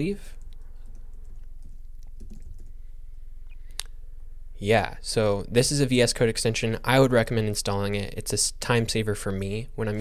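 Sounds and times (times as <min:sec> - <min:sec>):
computer keyboard typing: 0:00.7 - 0:02.8.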